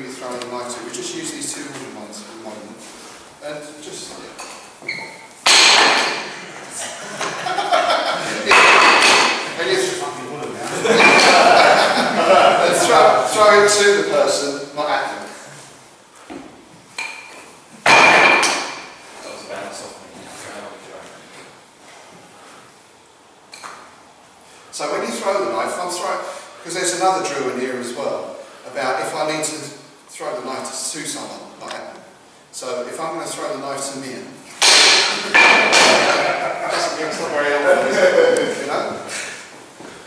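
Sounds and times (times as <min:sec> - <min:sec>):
men's voices echoing: 0:00.0 - 0:04.8, 0:05.8 - 0:15.8, 0:24.7 - 0:39.6.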